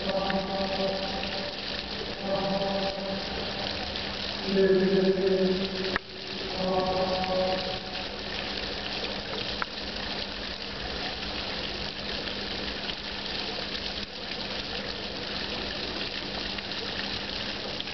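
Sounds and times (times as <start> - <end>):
low steady hum: 0.0 - 14.3
fountain water splashing: 0.0 - 17.9.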